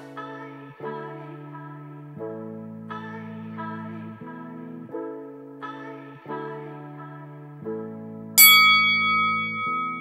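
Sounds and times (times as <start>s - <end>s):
bell-like chime: 8.4s - 10.0s.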